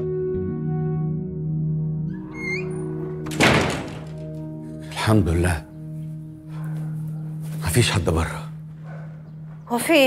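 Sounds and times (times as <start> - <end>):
background music: 0.0 - 10.0
door squeaking: 2.1 - 4.5
wooden door thudding: 2.3 - 4.5.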